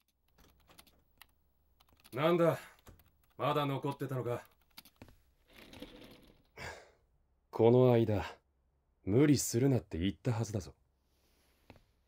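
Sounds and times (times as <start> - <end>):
keyboard typing: 0.0 - 6.4.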